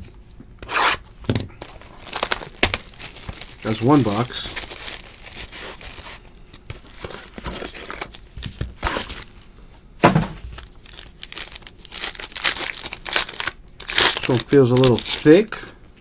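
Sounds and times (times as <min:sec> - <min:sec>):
foil pack tearing: 0:01.6 - 0:08.2, 0:10.6 - 0:15.4
foil pack crinkling: 0:01.6 - 0:09.5, 0:10.5 - 0:15.6.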